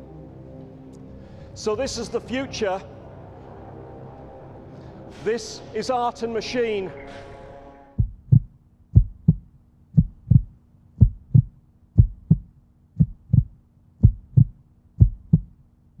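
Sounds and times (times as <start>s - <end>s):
heartbeat thumps: 8.0s - 15.6s.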